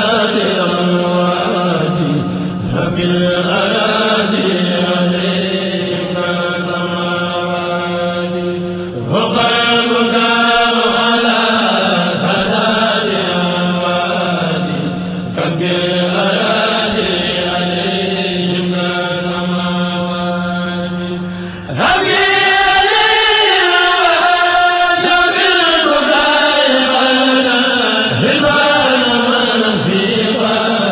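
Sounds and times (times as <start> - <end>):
low drone: 0.0 - 30.9
person chanting religious verse: 0.0 - 30.9.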